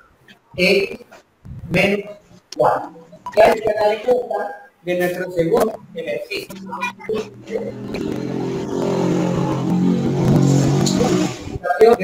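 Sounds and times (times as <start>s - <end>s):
vehicle engine running: 5.1s - 11.6s.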